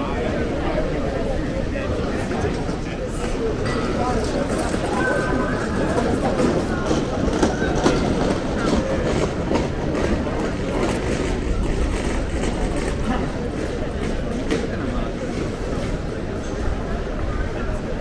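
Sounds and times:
people talking: 0.0 - 18.0
hand truck wheels rattling on stone: 3.2 - 14.8.

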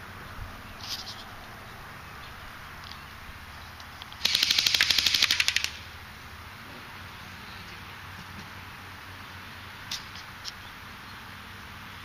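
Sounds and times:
airsoft rifle full-auto burst: 4.2 - 5.8.

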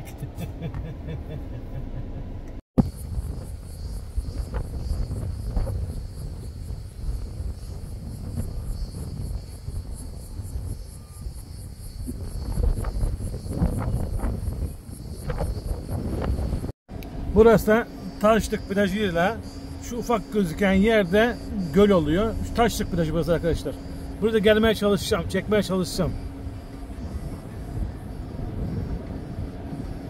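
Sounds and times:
wind rumble on microphone: 2.8 - 20.0, 20.6 - 30.0
cicadas buzzing: 2.8 - 30.0.

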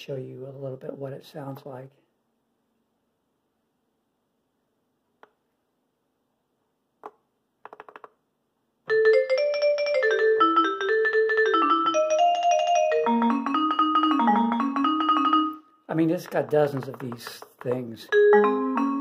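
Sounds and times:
keyboard vibraphone arpeggio: 8.9 - 15.8, 18.1 - 19.0.

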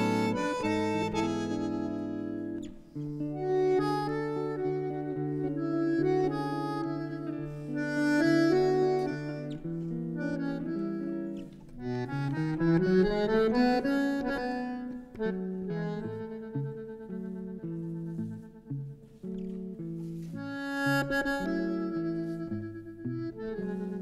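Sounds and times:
bandoneon chords: 0.0 - 24.0
guitar playing: 0.0 - 24.0.

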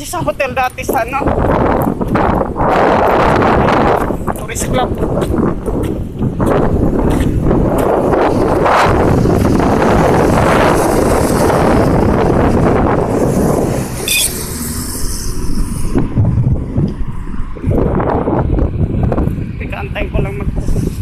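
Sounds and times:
road traffic noise: 0.0 - 21.0
wind buffeting microphone: 0.0 - 21.0
brief high chirp: 14.0 - 14.4.

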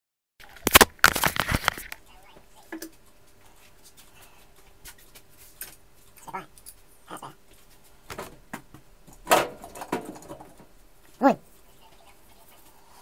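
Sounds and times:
faint steady hum: 0.4 - 13.0
phone handling rustling: 0.6 - 2.0.

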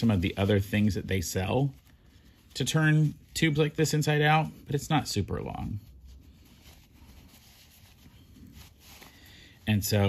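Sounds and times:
fabric rustling and rubbing: 0.0 - 10.0.

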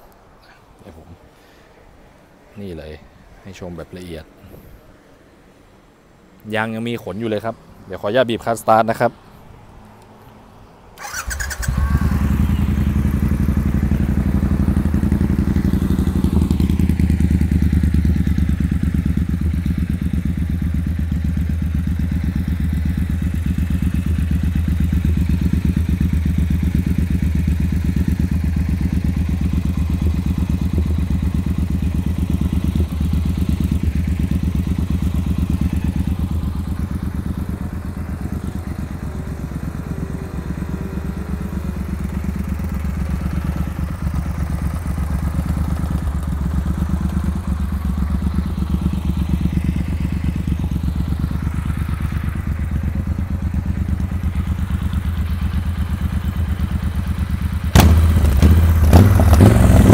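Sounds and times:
motorcycle engine idling: 11.0 - 59.9.

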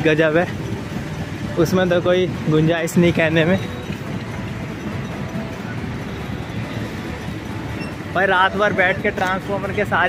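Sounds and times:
rumbling street traffic: 0.0 - 10.0
tractor pulling a trailer: 0.0 - 10.0.

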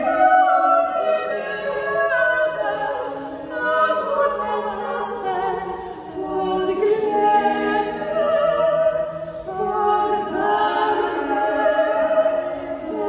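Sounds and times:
women singing a cappella: 0.0 - 13.0.

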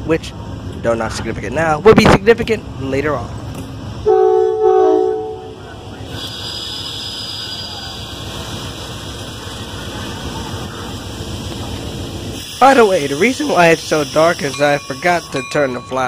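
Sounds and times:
train rolling past: 0.0 - 16.0
train horn: 4.0 - 5.6
faint high whine: 12.6 - 16.0.

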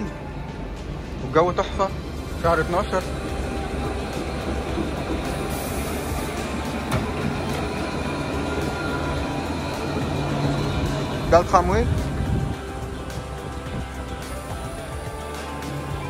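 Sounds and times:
tram rolling rumble: 0.0 - 16.0.

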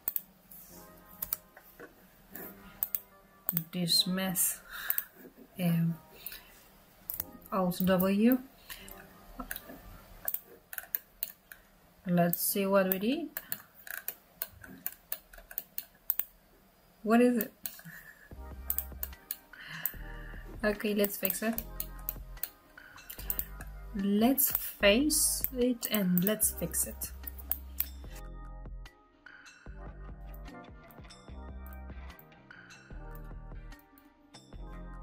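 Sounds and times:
computer keyboard clicking: 0.0 - 0.2, 18.7 - 20.0
computer mouse clicking: 0.0 - 0.3, 1.2 - 1.5, 2.8 - 3.7, 4.8 - 5.1, 7.1 - 8.1, 8.7 - 11.7, 12.3 - 16.3, 17.4 - 20.0, 21.0 - 23.7, 27.3 - 28.0
faint background music: 0.0 - 35.0.

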